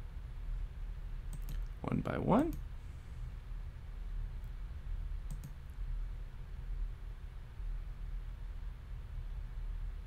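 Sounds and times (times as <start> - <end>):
steady low hum: 0.0 - 10.0
computer mouse clicks: 1.3 - 1.8, 5.2 - 5.6.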